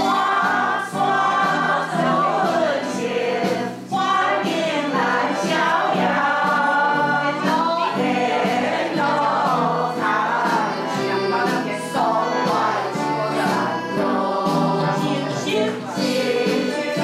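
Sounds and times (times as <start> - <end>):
group of voices singing: 0.0 - 17.0.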